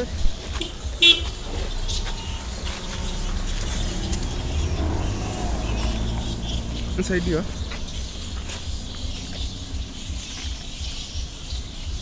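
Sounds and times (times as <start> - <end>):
high vehicle horn toot: 0.6 - 1.3.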